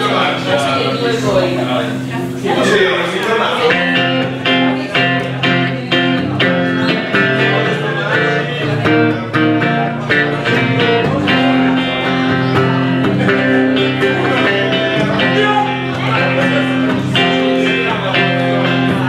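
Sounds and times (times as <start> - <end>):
electric guitar strumming chords: 0.0 - 19.0.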